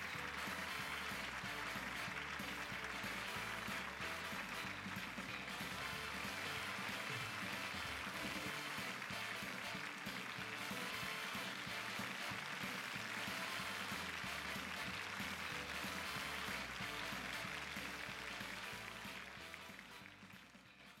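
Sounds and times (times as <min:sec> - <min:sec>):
sitcom theme music: 0:00.0 - 0:21.0.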